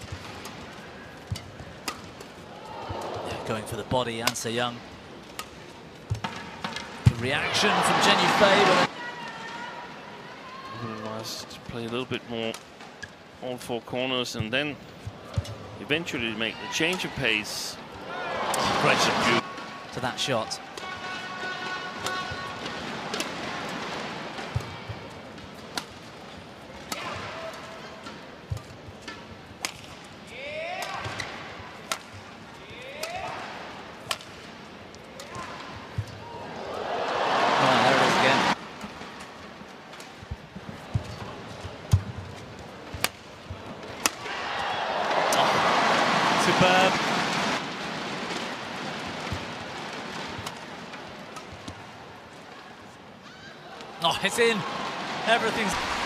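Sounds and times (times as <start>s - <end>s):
crowd cheering: 2.5s - 3.9s, 7.2s - 9.8s, 18.0s - 19.4s, 36.2s - 38.6s, 44.0s - 47.7s, 53.7s - 56.0s
racket hitting shuttlecock: 28.0s - 30.0s, 30.8s - 32.2s, 32.8s - 33.4s, 34.0s - 34.4s, 43.9s - 44.4s.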